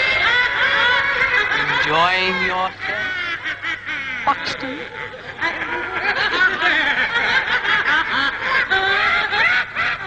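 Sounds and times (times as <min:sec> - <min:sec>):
high-pitched cartoon snickering: 0:04.3 - 0:10.0.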